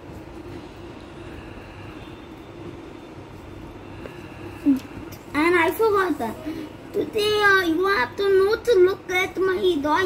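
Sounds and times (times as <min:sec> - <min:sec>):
steady appliance hum: 0:00.0 - 0:10.0.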